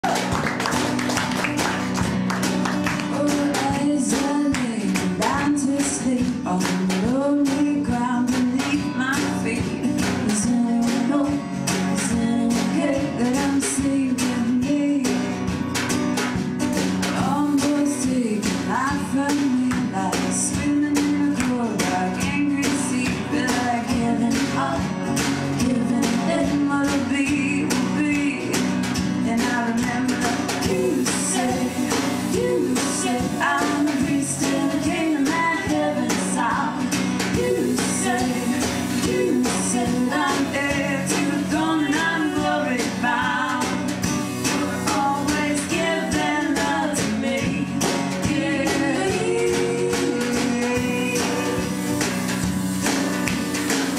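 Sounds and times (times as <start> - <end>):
strummed acoustic guitar: 0.0 - 53.9
woman singing: 2.8 - 15.6, 17.0 - 52.0.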